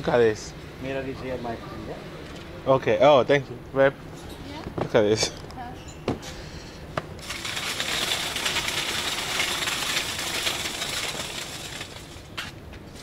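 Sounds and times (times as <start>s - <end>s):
high crackling rustle: 7.2s - 13.0s.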